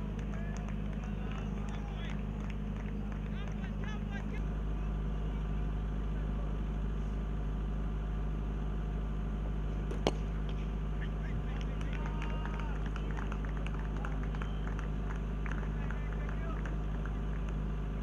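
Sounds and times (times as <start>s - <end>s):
steady low hum: 0.0s - 18.0s
cricket bat striking ball: 9.9s - 10.7s.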